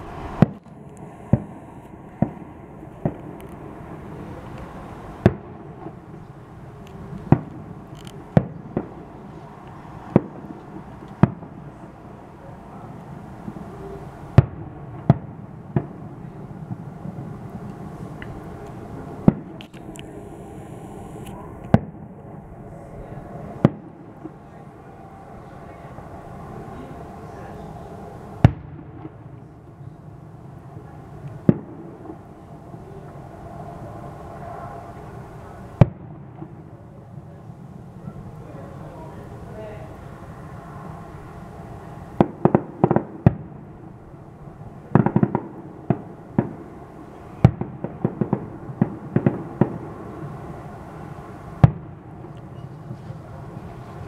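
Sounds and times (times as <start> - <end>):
low background noise: 0.0 - 54.0.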